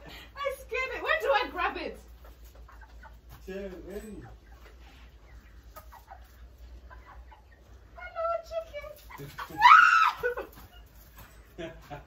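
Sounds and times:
chickens clucking: 0:00.0 - 0:11.9.

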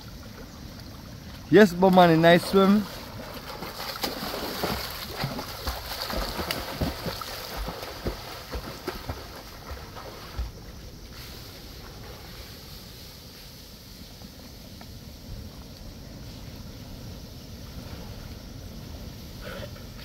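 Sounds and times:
swimmer splashing water: 0:00.0 - 0:13.6
steady hiss: 0:07.1 - 0:20.0.

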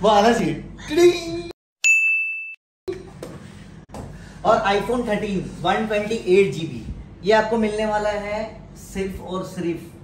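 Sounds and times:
bright ding: 0:01.8 - 0:03.0.

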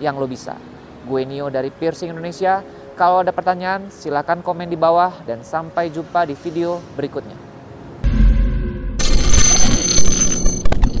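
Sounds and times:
deep electronic bass: 0:08.0 - 0:09.5
high ringing tones: 0:08.0 - 0:11.0
sharp glitchy clicks: 0:08.0 - 0:11.0.

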